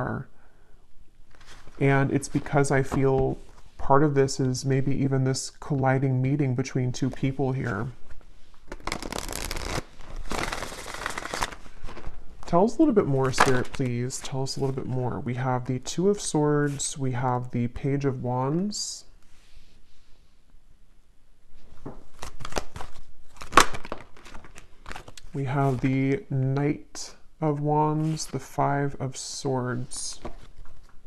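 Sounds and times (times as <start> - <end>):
cards being shuffled: 8.6 - 12.6, 21.8 - 25.9.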